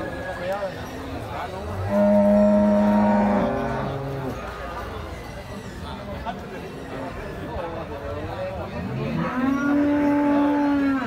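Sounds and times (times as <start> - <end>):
cow mooing: 1.8 - 4.3, 9.0 - 11.0.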